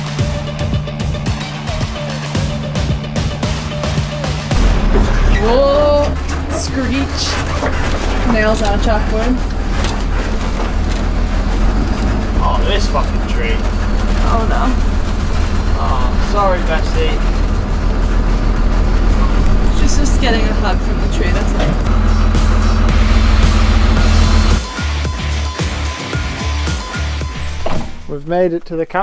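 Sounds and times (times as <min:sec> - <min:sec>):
bus engine low rumble: 0:04.5 - 0:24.6.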